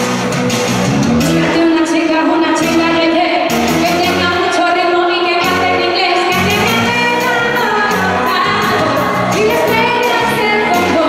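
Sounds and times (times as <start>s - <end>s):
amplified pop accompaniment: 0.0s - 11.0s
woman singing into microphone: 1.2s - 11.0s.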